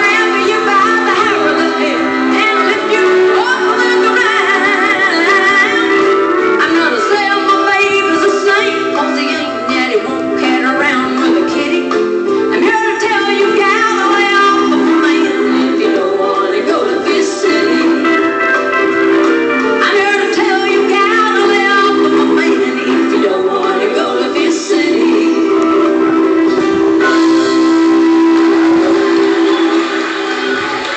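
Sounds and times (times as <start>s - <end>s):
woman singing: 0.0s - 18.8s, 19.6s - 30.2s
country band music: 0.0s - 30.9s.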